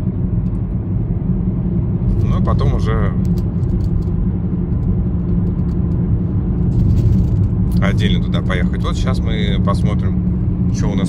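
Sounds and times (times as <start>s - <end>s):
engine and tyres rumbling on road: 0.0s - 11.0s.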